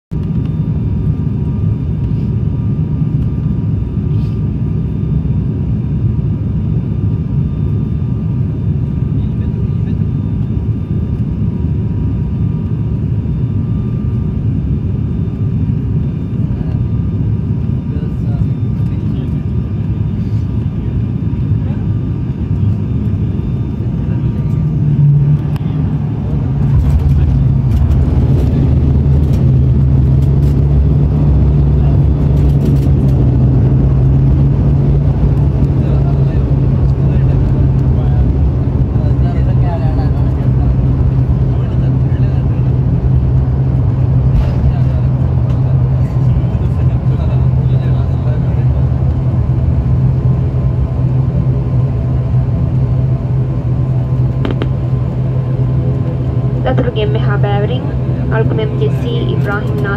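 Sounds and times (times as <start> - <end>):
turboprop cabin drone: 0.1 - 59.9
aircraft touching down and rolling: 22.5 - 50.6, 53.8 - 59.9.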